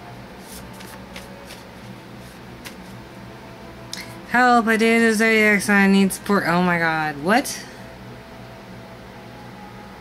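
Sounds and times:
faint steady hum: 0:00.0 - 0:10.0
cards being shuffled: 0:00.4 - 0:03.0.

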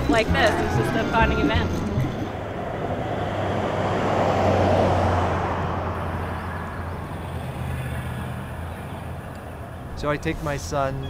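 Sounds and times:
car passing by: 0:00.0 - 0:10.8.

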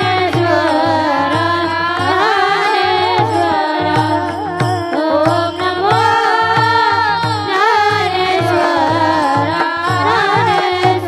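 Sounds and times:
hand drum strokes: 0:00.0 - 0:11.0
women singing chant together: 0:00.0 - 0:11.0.

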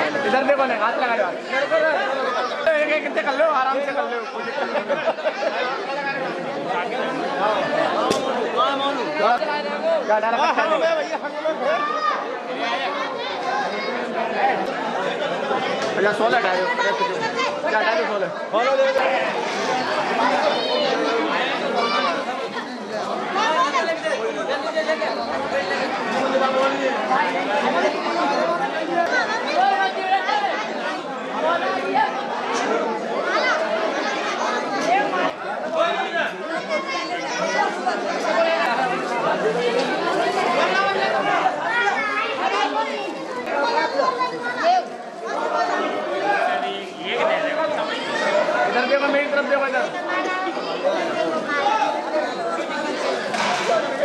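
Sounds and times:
crowd chatter: 0:00.0 - 0:54.0.

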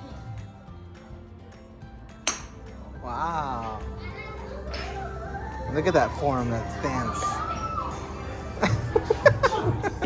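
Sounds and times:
background music: 0:00.0 - 0:10.0
golf club striking ball: 0:02.2 - 0:02.6.

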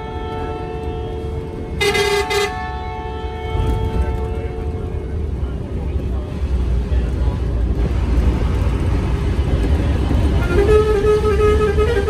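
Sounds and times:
vehicle horn blasts: 0:00.0 - 0:05.2, 0:10.4 - 0:12.0
moving vehicle hum: 0:00.0 - 0:12.0.

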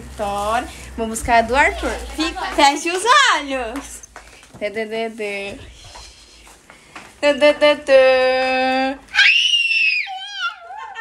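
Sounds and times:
small child squealing: 0:09.1 - 0:11.0.

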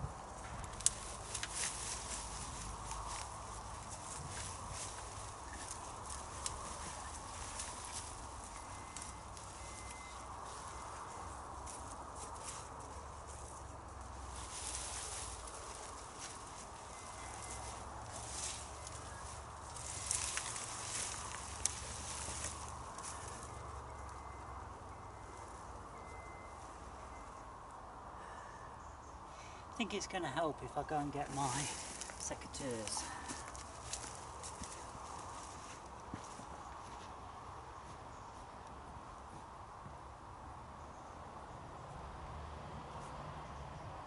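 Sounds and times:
plants rustling and crackling: 0:00.0 - 0:27.7, 0:29.6 - 0:39.9.

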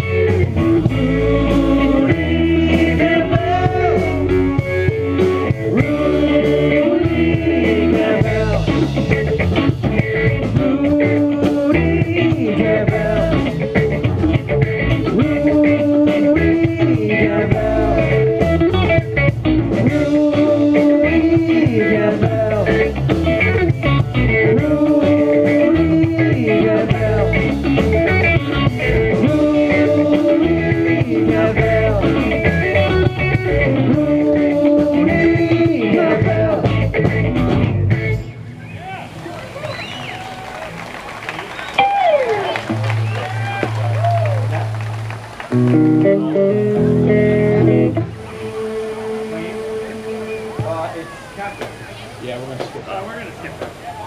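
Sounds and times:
rock band playing: 0:00.0 - 0:51.8.

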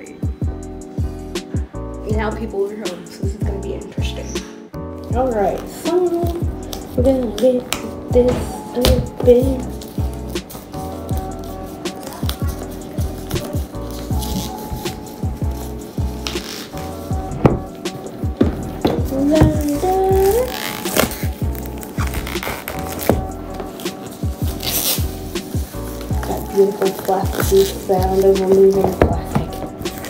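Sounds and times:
background music: 0:00.0 - 0:30.0
plastic shrink wrap crinkling: 0:08.7 - 0:30.0.

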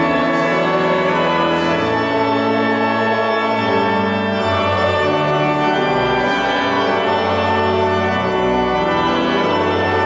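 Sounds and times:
church organ playing held chords: 0:00.0 - 0:10.0.

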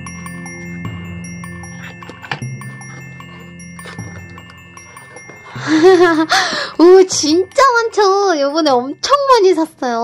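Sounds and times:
chime-like bell music: 0:00.0 - 0:10.0.

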